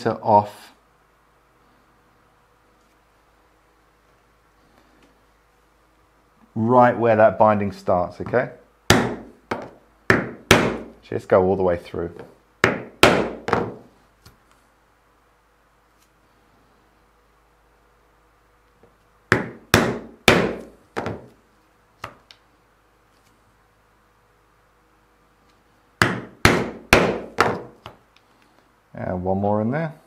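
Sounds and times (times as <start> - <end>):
mallet striking pricking iron: 8.9 - 9.3.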